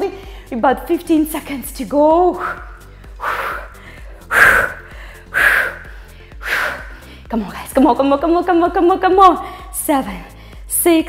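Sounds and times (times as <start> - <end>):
faint background music: 0.0 - 11.0
woman breathing out forcefully: 2.4 - 7.3.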